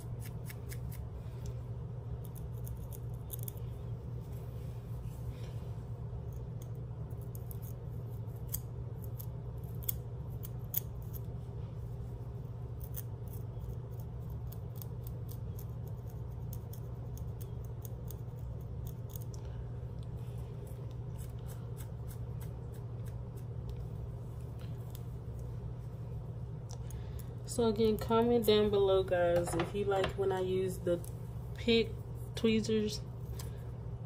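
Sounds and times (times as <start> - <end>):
steady low hum: 0.0 - 34.0.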